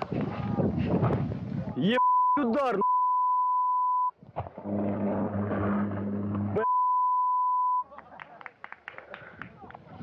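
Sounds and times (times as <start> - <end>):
censor bleep: 2.0 - 4.1, 6.6 - 7.8.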